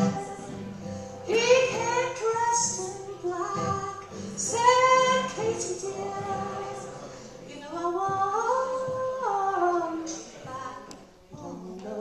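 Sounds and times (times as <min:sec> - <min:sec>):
acoustic guitar: 0:00.0 - 0:12.0
concertina: 0:00.0 - 0:12.0.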